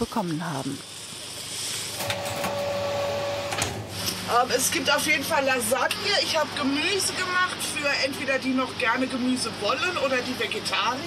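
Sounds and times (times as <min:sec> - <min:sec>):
kitchen appliance whining: 0:01.9 - 0:04.6.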